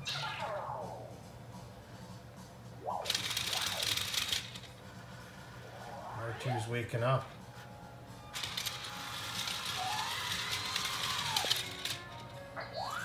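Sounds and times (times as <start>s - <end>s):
rattling buzzing robot chatter: 8.4s - 12.2s.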